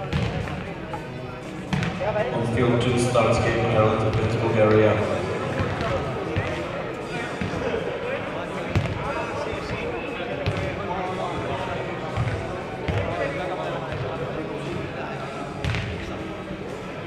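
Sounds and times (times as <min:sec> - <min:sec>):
voices echoing in hall: 0:00.0 - 0:17.0.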